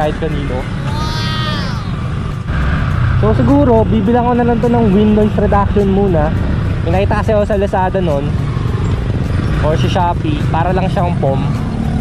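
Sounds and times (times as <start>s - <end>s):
low rumble of engine and wind: 0.0s - 12.0s.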